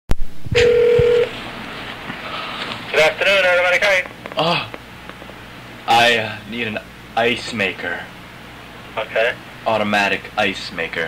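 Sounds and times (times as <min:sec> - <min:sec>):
phone line hiss: 0:00.5 - 0:01.4
steady phone tone: 0:00.5 - 0:01.4
phone line click: 0:00.6 - 0:01.3.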